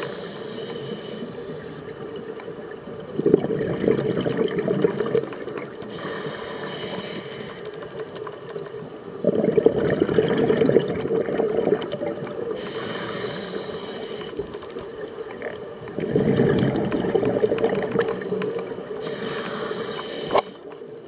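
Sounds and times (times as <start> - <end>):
regulator inhale hiss: 0.0 - 2.1, 5.8 - 8.0, 12.5 - 14.8, 18.1 - 20.8
gurgling exhaled bubbles: 2.0 - 6.0, 9.0 - 13.4, 14.6 - 19.3.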